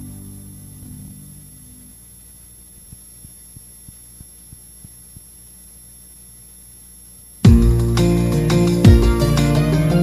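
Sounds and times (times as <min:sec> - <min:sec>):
low steady hum: 0:00.0 - 0:10.0
faint ticks: 0:02.7 - 0:05.5.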